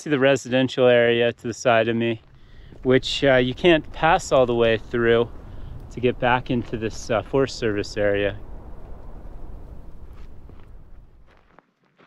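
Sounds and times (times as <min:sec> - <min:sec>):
low rumble: 0:02.1 - 0:11.4
footsteps on stony ground: 0:09.8 - 0:12.0.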